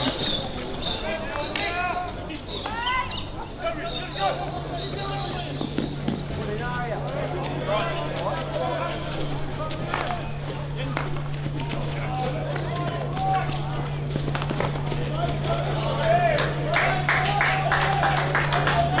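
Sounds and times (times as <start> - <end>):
players shouting: 0.0 - 19.0
steady low hum: 0.0 - 19.0.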